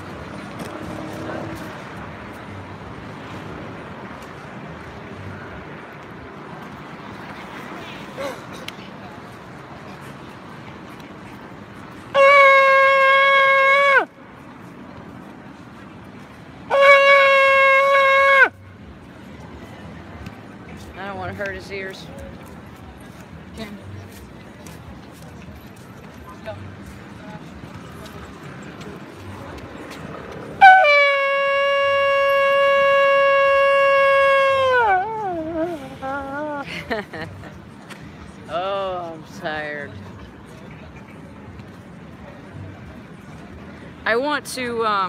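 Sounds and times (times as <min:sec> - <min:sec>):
shofar blasts: 0:12.1 - 0:14.1, 0:16.7 - 0:18.6, 0:30.5 - 0:36.6.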